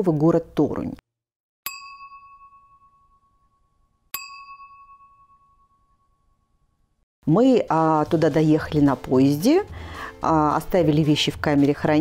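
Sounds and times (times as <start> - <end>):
bell-like ding: 1.6 - 6.9.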